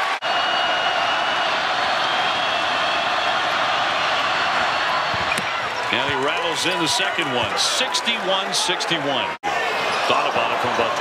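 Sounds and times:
crowd voices din: 0:03.5 - 0:11.0.

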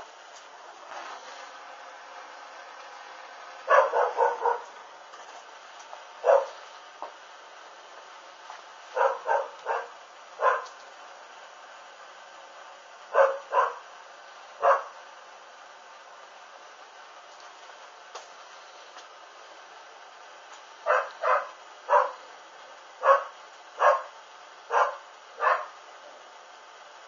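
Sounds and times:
dog barking: 0:03.6 - 0:04.8, 0:06.2 - 0:06.6, 0:08.9 - 0:10.8, 0:13.1 - 0:13.9, 0:14.6 - 0:15.0, 0:20.8 - 0:22.3, 0:23.0 - 0:25.8.

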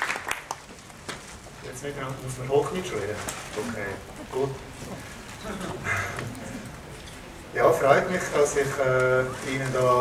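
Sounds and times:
hall room noise: 0:00.0 - 0:10.0.

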